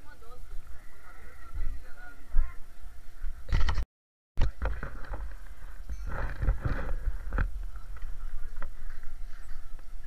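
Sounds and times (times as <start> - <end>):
microphone handling noise: 4.4 - 9.9
faint voices: 4.4 - 10.0
wind rumble on microphone: 4.4 - 10.0.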